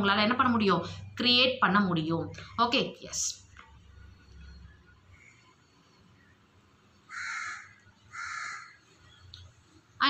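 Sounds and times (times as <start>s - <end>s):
bird harsh calls: 7.1s - 8.8s.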